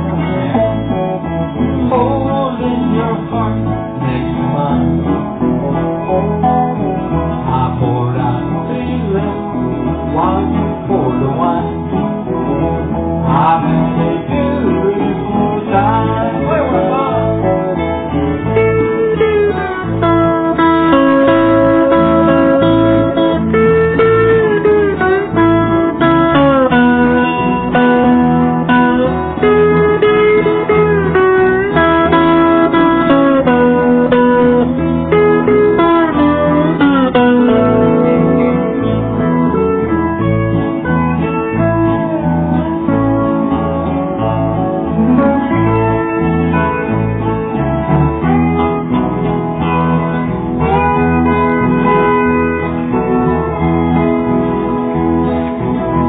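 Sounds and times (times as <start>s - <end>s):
steady bass pulse: 0.0s - 56.0s
steel guitar sliding melody: 0.0s - 56.0s
strummed acoustic guitar: 0.0s - 56.0s.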